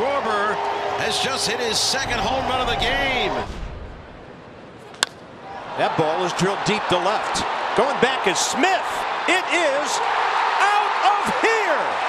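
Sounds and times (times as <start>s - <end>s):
wooden bat cracking a ball: 4.9s - 5.3s.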